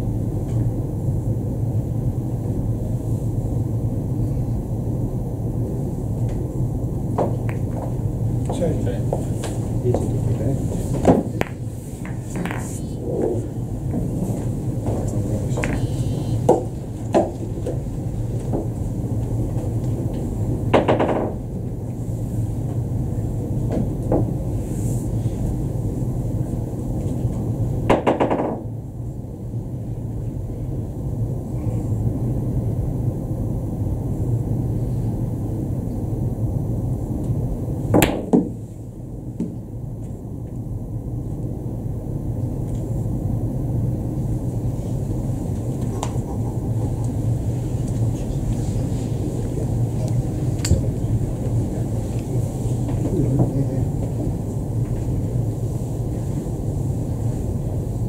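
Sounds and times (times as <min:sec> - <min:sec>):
low hum of hall: 0:00.0 - 0:58.0
billiard balls clacking: 0:11.1 - 0:12.8.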